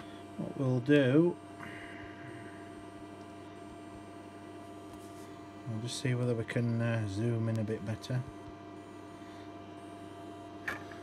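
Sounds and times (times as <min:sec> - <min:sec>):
faint electrical hum: 0:00.0 - 0:11.0.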